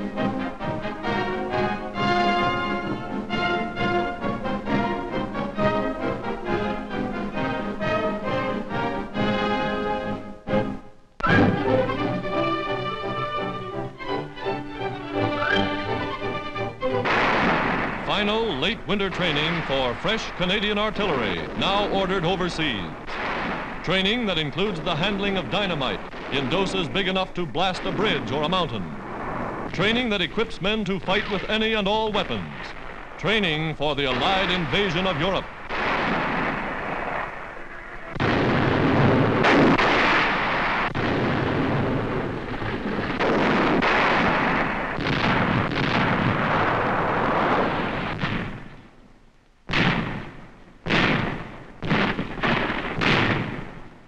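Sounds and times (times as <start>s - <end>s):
explosions with deep rumble: 16.6s - 49.0s, 49.6s - 54.0s
field gun shot: 17.0s - 48.9s, 49.7s - 53.9s.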